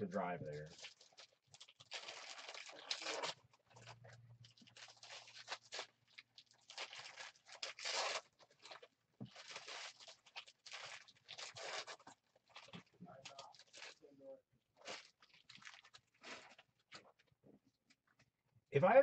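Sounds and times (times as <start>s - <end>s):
foil wrapper crinkling: 0.7s - 14.0s, 14.8s - 17.2s.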